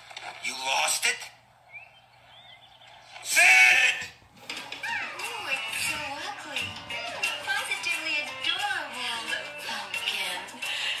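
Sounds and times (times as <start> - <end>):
background music: 3.6 - 11.0.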